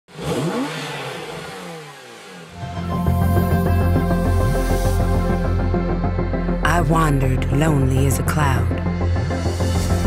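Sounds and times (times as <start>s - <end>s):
car engine revving: 0.1s - 6.0s.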